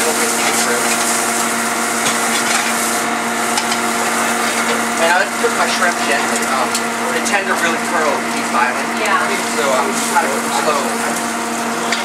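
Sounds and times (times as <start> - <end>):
noodles sizzling in a wok: 0.0 - 6.9
constant mechanical hum: 0.0 - 12.0.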